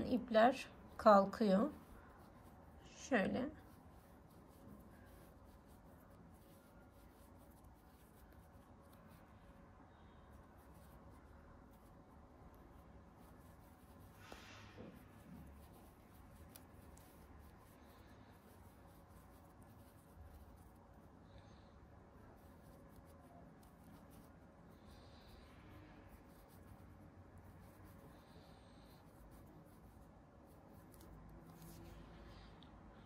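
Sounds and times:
yarn rustling through crochet hook: 0.0s - 33.0s.

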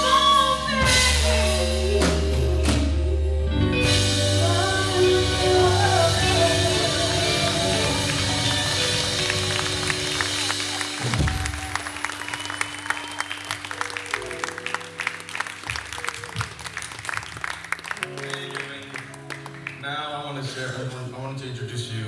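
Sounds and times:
band holding chords: 0.0s - 22.0s
sustained keyboard and bass notes: 0.0s - 22.0s
audience clapping: 6.2s - 20.9s.

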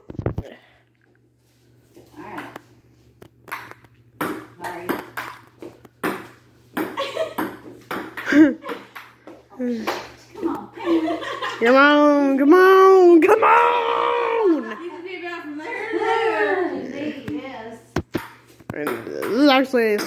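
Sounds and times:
ball bouncing on table: 3.5s - 10.0s, 18.0s - 20.0s
table tennis ball hitting paddles: 3.5s - 10.1s, 18.0s - 20.0s.

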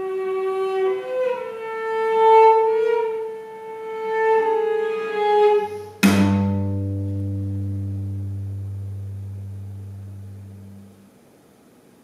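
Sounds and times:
cello and double bass bowed note: 1.2s - 11.0s.

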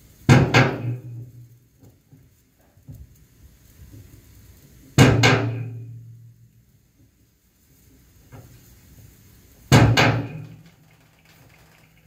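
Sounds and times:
drum struck with stick: 0.3s - 1.2s, 5.0s - 6.0s, 9.7s - 10.6s.

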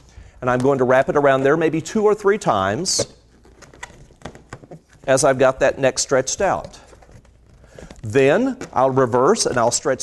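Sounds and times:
balloons rubbing and squeaking: 2.8s - 10.0s.

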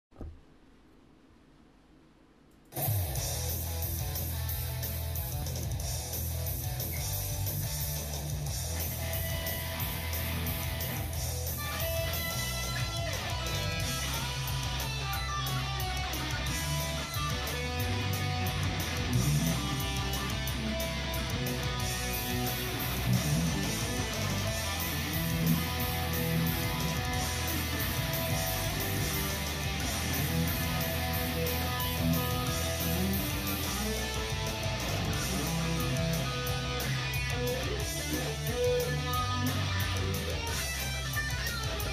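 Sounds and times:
amplified electric guitar: 2.7s - 41.9s.

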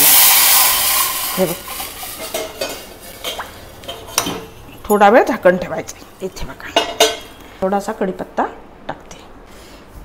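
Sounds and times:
loud sudden sizzle: 0.0s - 2.4s.

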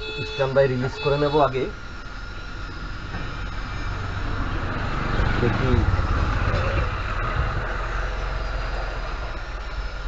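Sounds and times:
road traffic engine rumble: 0.0s - 10.0s.

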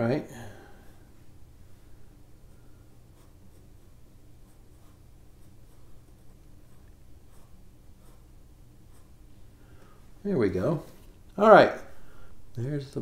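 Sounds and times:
pencil sketching on paper: 1.8s - 9.6s.

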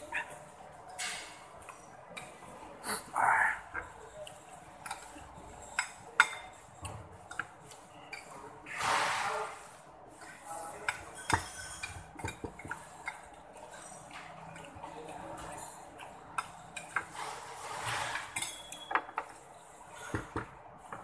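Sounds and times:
dishes clinking: 0.9s - 2.4s, 4.8s - 9.4s, 10.2s - 14.8s, 15.4s - 21.0s.

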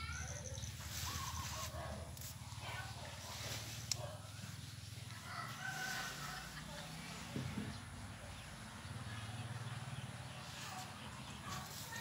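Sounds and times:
rooster crowing: 5.2s - 6.7s.

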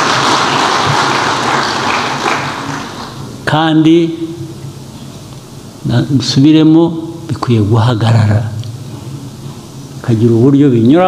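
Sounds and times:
audience applauding: 0.0s - 3.2s.

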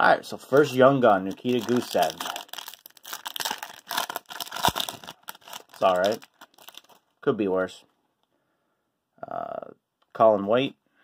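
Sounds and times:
plastic wrapper tearing and crinkling: 0.6s - 7.1s.

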